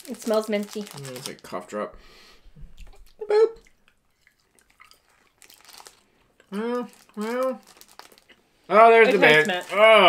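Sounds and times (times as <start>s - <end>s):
chewing soft candy: 2.8s - 8.4s
short voiced boop: 3.2s - 3.7s.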